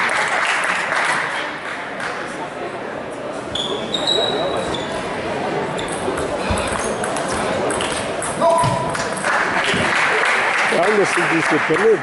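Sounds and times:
applause: 0.0s - 2.3s, 9.2s - 12.0s.

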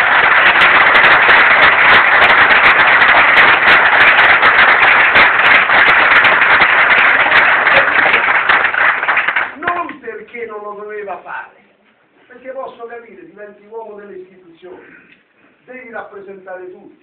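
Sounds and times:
audience applause: 0.0s - 9.6s.

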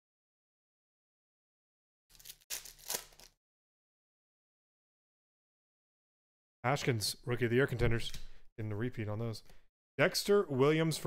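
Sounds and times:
foil wrapper tearing: 2.1s - 3.4s.

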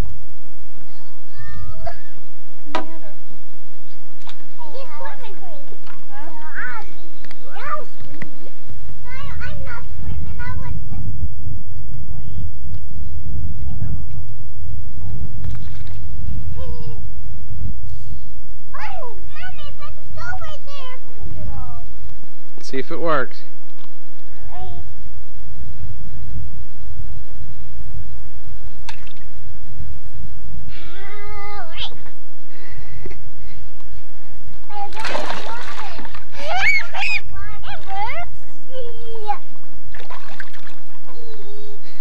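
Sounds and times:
low rumble: 0.0s - 22.6s, 23.3s - 42.0s
children's voices: 0.8s - 2.2s, 4.4s - 8.2s, 9.0s - 11.2s, 12.1s - 12.5s, 16.5s - 17.0s, 18.7s - 21.9s, 30.7s - 32.1s, 34.7s - 42.0s
splash of water: 34.8s - 36.2s, 39.9s - 40.9s
small child squealing: 36.4s - 37.6s.

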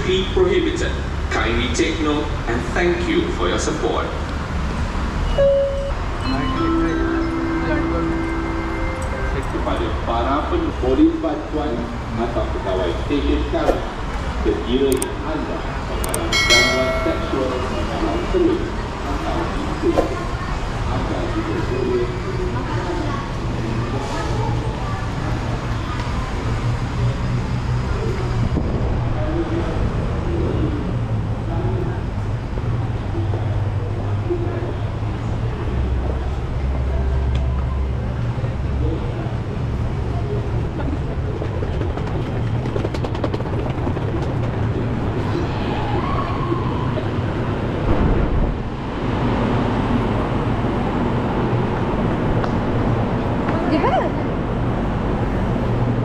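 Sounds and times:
train station low rumble: 0.0s - 56.0s.

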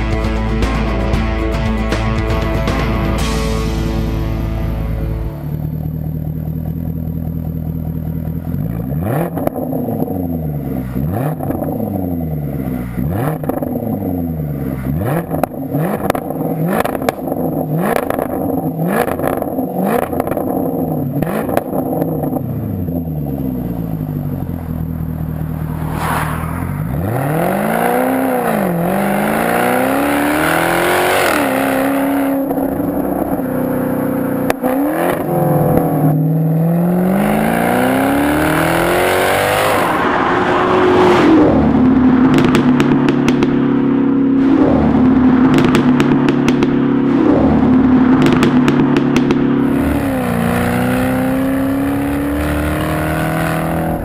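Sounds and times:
car engine revving: 2.7s - 54.0s
car accelerating hard: 4.0s - 54.0s
exhaust crackles and pops: 5.3s - 38.4s, 41.7s - 52.8s.

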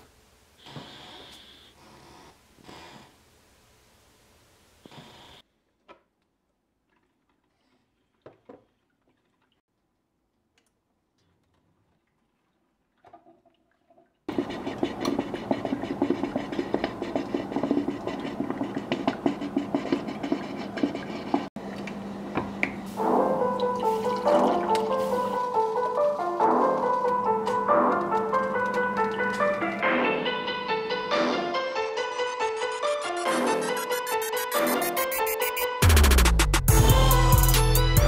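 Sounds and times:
coffee maker gurgling hiss: 14.3s - 21.5s
piano music: 22.9s - 38.0s.

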